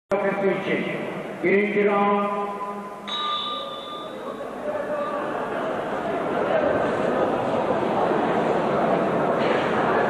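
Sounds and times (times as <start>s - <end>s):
steady pitched tone: 2.3s - 5.5s
boxing bell ringing: 2.5s - 4.6s.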